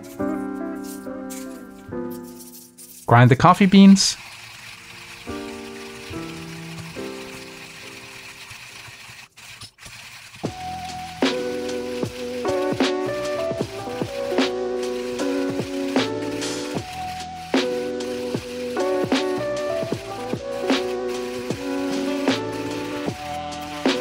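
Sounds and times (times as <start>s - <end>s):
background music: 0.0s - 4.2s, 10.5s - 24.0s
hand coffee grinder crunching: 0.0s - 24.0s.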